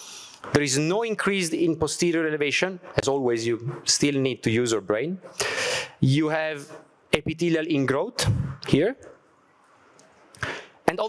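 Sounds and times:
man speaking over microphone: 0.5 - 5.3, 6.0 - 9.1
quick breath in: 5.4 - 6.0, 10.4 - 10.8.

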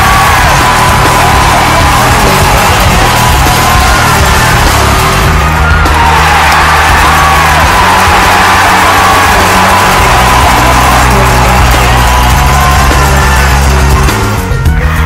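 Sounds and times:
loud music with heavy bass: 0.0 - 15.0.

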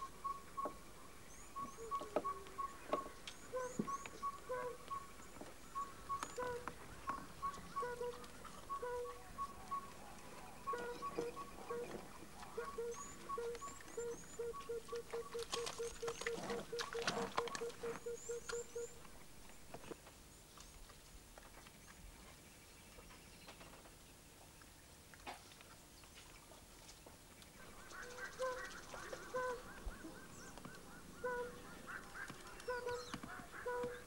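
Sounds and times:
dove cooing: 1.6 - 5.0, 5.8 - 9.9, 10.6 - 19.0, 27.6 - 34.0
bird calling one low note: 1.6 - 5.1, 5.8 - 6.7, 7.4 - 9.9, 12.6 - 19.0, 27.6 - 34.0.

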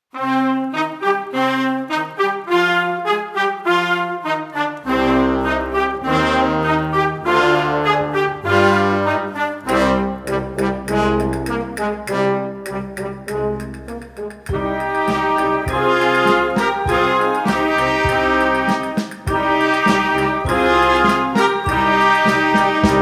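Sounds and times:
concert band brass music: 0.1 - 23.0.

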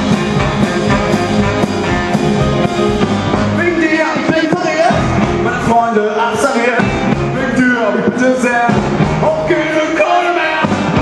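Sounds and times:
rock and roll band playing: 0.0 - 11.0
man singing: 3.6 - 11.0.

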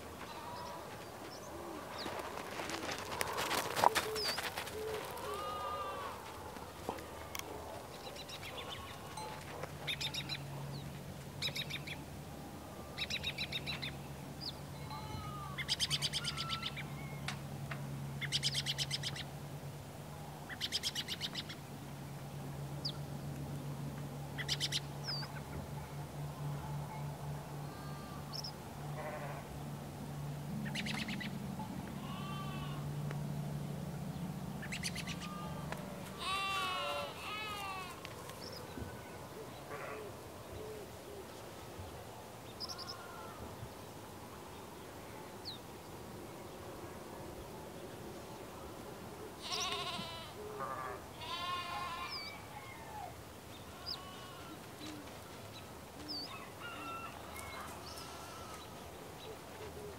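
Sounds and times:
birds chirping: 0.0 - 12.0, 33.7 - 43.4, 49.4 - 50.2, 53.4 - 59.9
animal bleats: 0.2 - 0.8, 4.5 - 6.3, 8.5 - 9.2, 14.8 - 16.8, 27.6 - 29.5, 32.0 - 32.9, 35.0 - 38.1, 42.7 - 43.4, 49.4 - 52.4, 53.7 - 55.5, 57.0 - 58.7.

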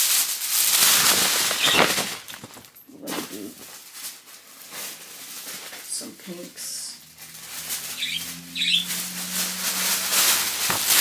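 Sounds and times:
tissue paper rustling: 0.0 - 11.0.

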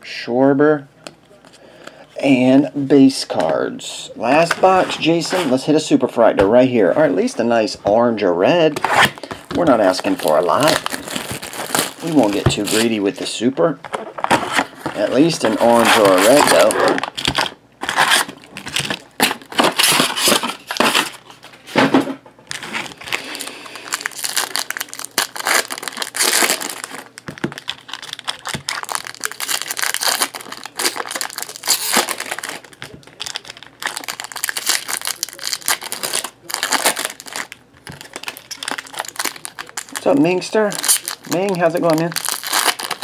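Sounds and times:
foil wrappers crinkling and tearing: 8.8 - 13.3, 14.2 - 21.4, 22.5 - 43.0.

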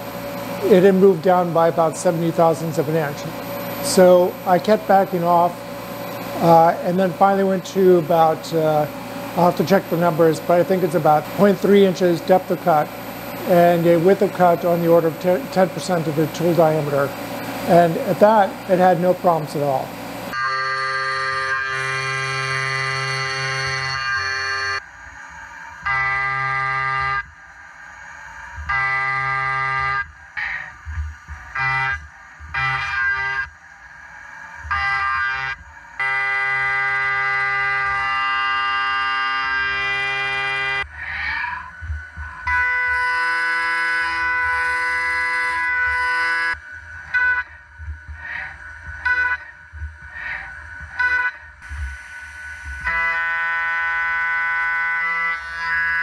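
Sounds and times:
milling machine cutting tone: 0.0 - 56.0.

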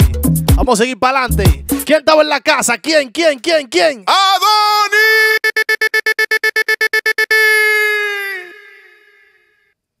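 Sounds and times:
stuttering pitched note: 5.2 - 9.3.

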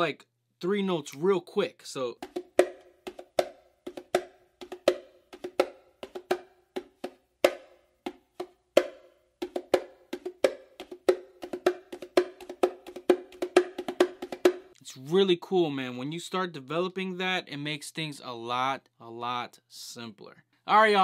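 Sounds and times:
bongos played by hand: 2.2 - 14.8.

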